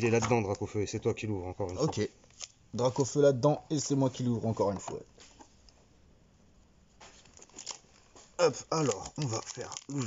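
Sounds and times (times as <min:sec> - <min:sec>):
foil wrapper crinkling: 0:07.2 - 0:10.0.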